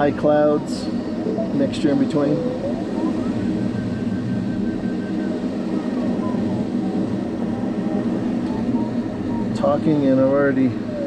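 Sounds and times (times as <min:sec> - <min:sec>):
airflow rushing in cockpit: 0:00.0 - 0:11.0
variometer beeping tone: 0:00.0 - 0:11.0.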